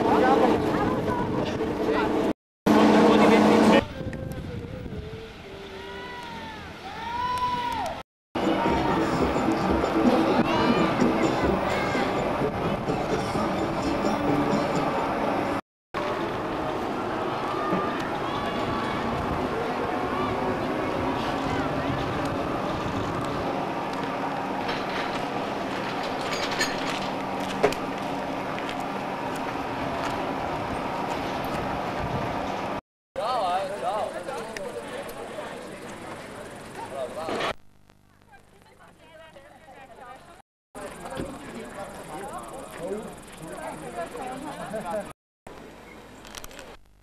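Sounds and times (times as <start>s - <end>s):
machine hum: 1.6s - 3.9s
overlapping voices talking: 7.8s - 14.9s.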